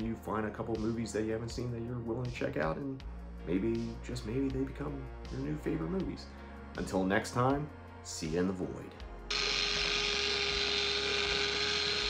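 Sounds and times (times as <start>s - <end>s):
electric drill whining: 9.3s - 12.0s.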